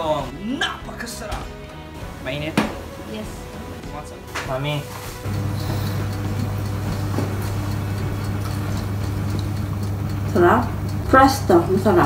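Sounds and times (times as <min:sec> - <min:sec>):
electric appliance humming: 0:05.1 - 0:12.0.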